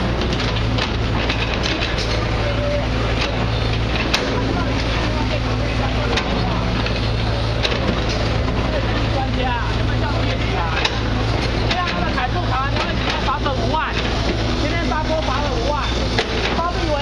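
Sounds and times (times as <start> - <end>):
crane engine running: 0.0 - 17.0
people talking: 1.6 - 17.0.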